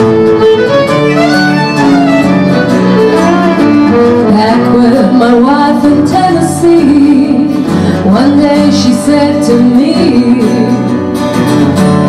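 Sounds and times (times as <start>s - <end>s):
fiddle playing melody: 0.0s - 8.2s
strummed acoustic guitars: 0.0s - 12.0s.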